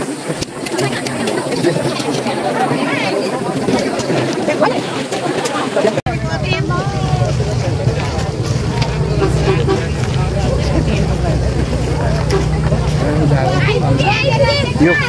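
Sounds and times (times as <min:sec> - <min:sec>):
people talking: 0:00.0 - 0:15.0
vehicle engine running: 0:06.1 - 0:15.0.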